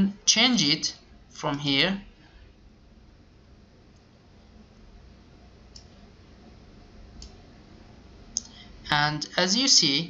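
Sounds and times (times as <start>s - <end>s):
low background noise: 0.0s - 10.0s
faint computer mouse clicks: 5.7s - 6.0s.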